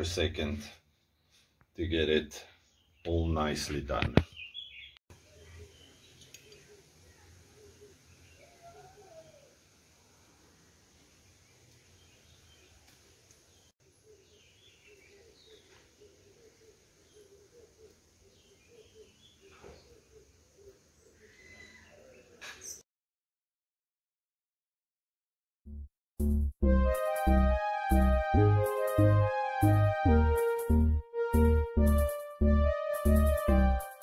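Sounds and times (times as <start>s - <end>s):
faint outdoor ambience: 0.0s - 22.8s
birds chirping: 2.7s - 9.6s, 11.3s - 22.8s.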